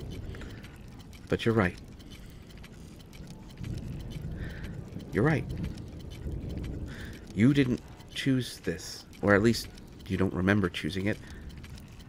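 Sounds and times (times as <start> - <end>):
faint scattered clicks: 0.0 - 12.0
low background rumble: 0.0 - 12.0.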